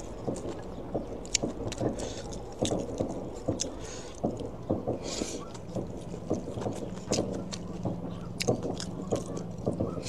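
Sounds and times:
chewing with wet mouth clicks: 0.0 - 10.0.

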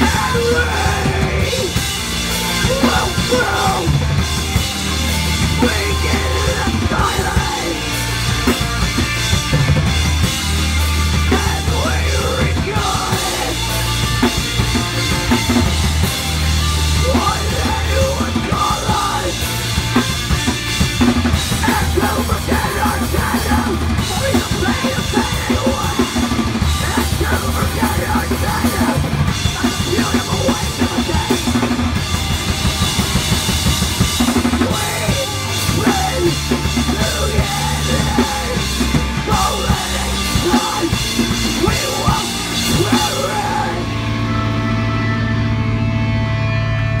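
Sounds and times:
bass guitar: 0.0 - 47.0
drum kit: 0.0 - 47.0
electric guitars: 0.0 - 47.0.

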